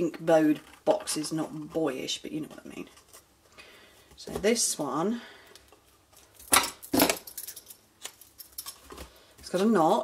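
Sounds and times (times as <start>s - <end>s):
clicks and rattles of handling: 0.3s - 3.3s, 5.5s - 9.8s.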